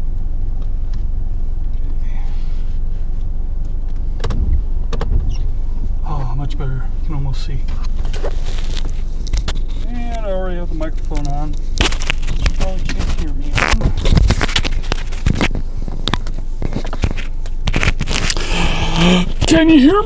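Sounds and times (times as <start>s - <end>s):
steady low rumble: 0.0s - 20.0s
microphone handling clicks and scrapes: 1.7s - 20.0s.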